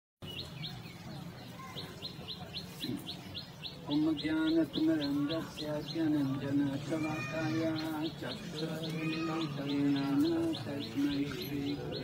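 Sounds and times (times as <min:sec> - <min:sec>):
bird chirping: 0:00.2 - 0:12.0.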